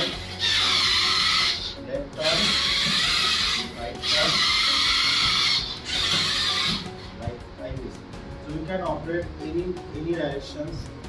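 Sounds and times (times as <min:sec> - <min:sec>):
small electric motors whining: 0:00.0 - 0:07.2.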